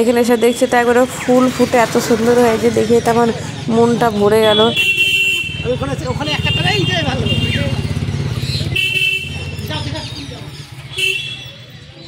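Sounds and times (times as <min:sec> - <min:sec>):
motor vehicle engine running: 0:00.8 - 0:04.9, 0:05.5 - 0:11.6.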